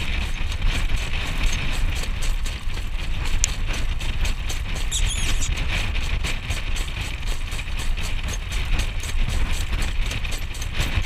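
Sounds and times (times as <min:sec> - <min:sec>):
cart rattling: 0:00.0 - 0:11.0
horse hoofbeats: 0:00.0 - 0:11.0
wind rumbling on microphone: 0:00.0 - 0:11.0
brief high squeak: 0:04.9 - 0:05.5.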